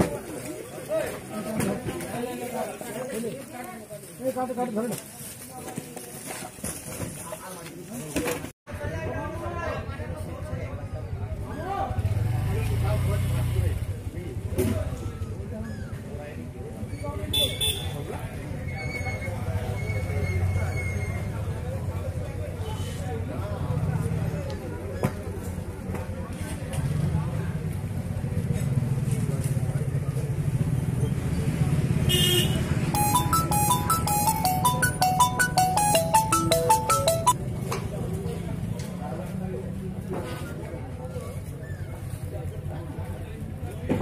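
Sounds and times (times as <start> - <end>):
people talking: 33.0 - 37.4.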